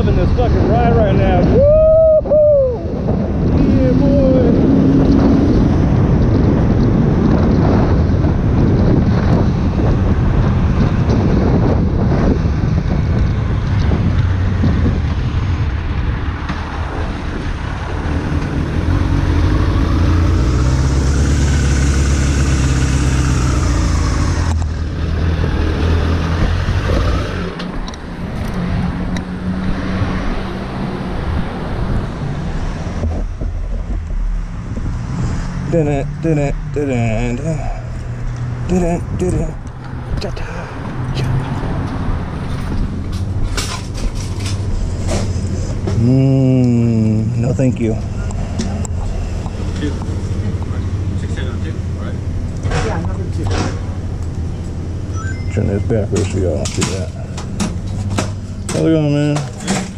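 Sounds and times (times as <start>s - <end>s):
wind rush on microphone: 0.0s - 55.0s
street traffic: 0.0s - 59.9s.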